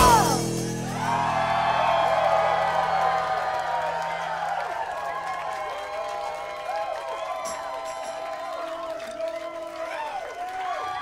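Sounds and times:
live band final chord: 0.0s - 6.4s
crowd cheering and whooping: 0.0s - 11.0s.

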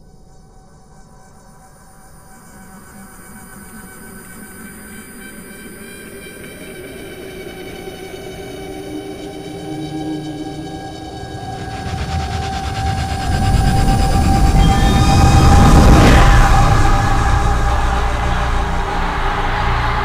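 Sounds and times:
layered soundtrack drone: 5.1s - 20.0s
low rumble: 11.3s - 20.0s.

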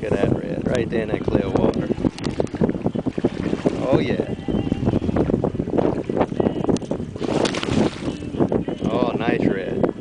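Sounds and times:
water slapping boat hull: 0.0s - 10.0s
wind buffeting microphone: 0.0s - 10.0s.

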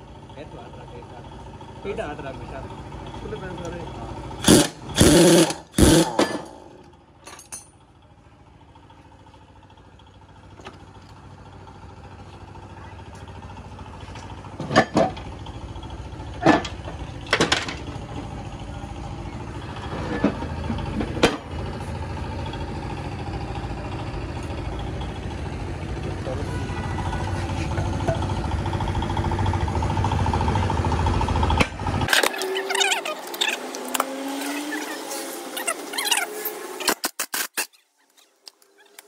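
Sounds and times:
short squeaks: 32.1s - 39.0s.

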